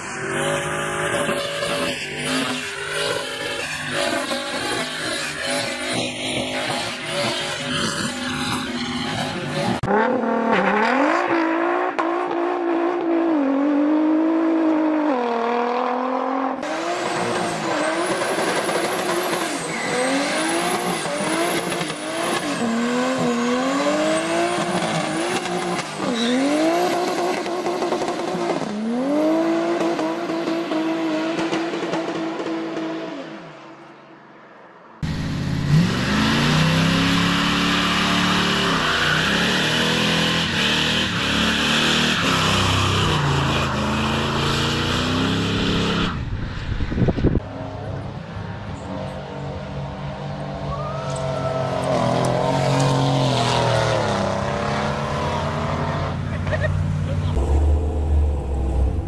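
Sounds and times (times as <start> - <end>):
car engines revving hard: 0.0 - 33.5, 35.0 - 59.0.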